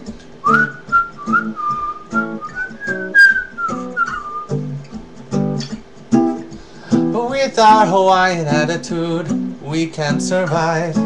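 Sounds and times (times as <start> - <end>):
acoustic guitar strumming: 0.0 - 11.0
person whistling a melody: 0.4 - 4.7.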